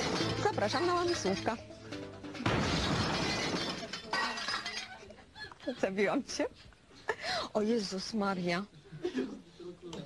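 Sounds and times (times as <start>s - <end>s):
glass shattering: 0.0s - 1.6s, 2.4s - 5.1s
music: 0.0s - 2.7s.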